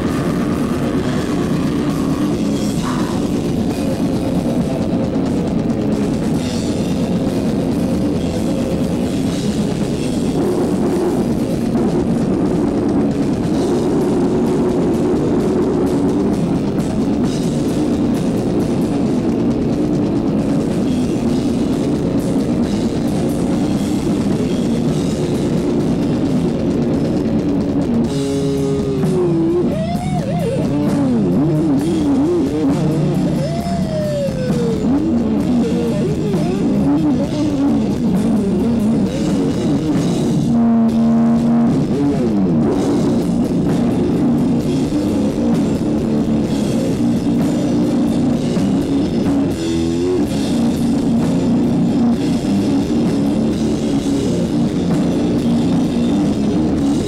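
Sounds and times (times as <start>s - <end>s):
distorted guitar and bass riffing: 0.0s - 57.0s
drum kit: 0.0s - 57.0s
wavering bending guitar line: 0.0s - 57.0s.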